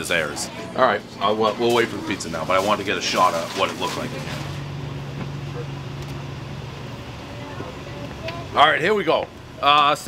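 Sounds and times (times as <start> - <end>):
low engine hum of traffic: 3.4 - 9.6.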